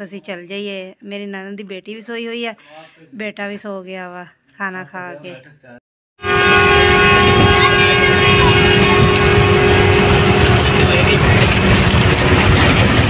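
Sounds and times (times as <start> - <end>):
bus engine and road noise: 7.6 - 13.0.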